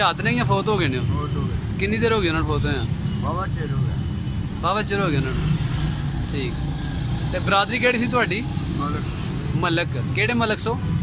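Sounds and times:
man speaking: 0:00.0 - 0:04.0, 0:04.6 - 0:05.5.

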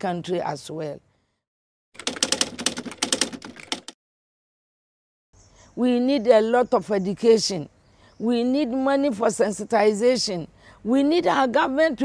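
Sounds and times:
typewriter key clacks: 0:02.0 - 0:04.0.

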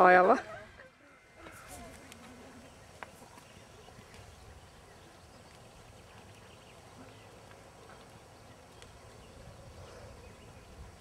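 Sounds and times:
soft hoofbeats on sand: 0:01.4 - 0:11.0.

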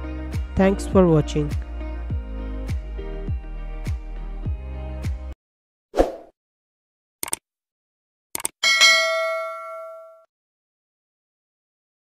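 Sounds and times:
notification bell ding: 0:08.6 - 0:10.3.

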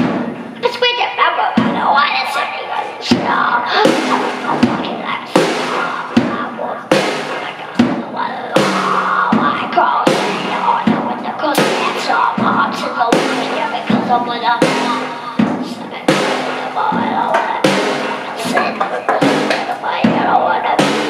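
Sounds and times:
drum kit beat: 0:00.0 - 0:21.0
cymbals ringing: 0:03.7 - 0:12.5, 0:13.1 - 0:19.8.

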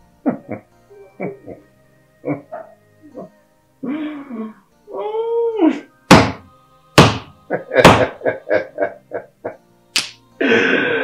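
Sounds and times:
sharp smacks: 0:07.0 - 0:08.1, 0:09.9 - 0:10.2.

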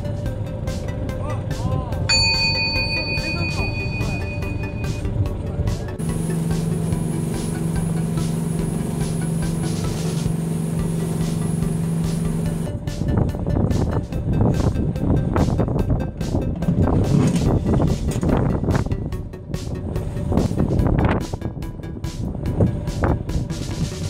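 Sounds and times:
boat engine running: 0:00.0 - 0:24.0
wind and water noise: 0:05.1 - 0:24.0.

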